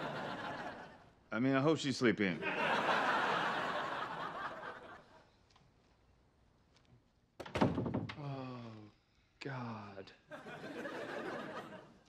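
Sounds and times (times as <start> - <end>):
sudden thunk: 7.4 - 8.2.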